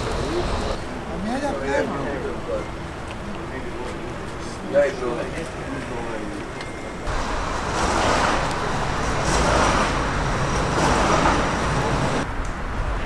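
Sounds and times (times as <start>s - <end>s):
murmur of crowd: 0.0s - 7.1s
road traffic: 0.0s - 13.0s.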